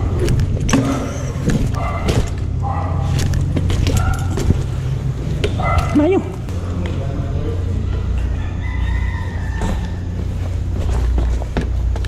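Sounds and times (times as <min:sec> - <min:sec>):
bike rolling rumble: 0:00.0 - 0:12.0.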